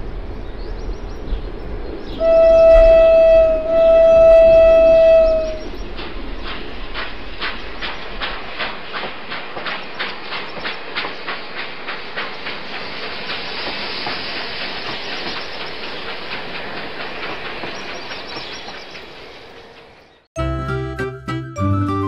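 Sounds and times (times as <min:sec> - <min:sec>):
train wheels clacking on rails: 0:04.8 - 0:20.0
steady steam hiss: 0:05.4 - 0:20.0.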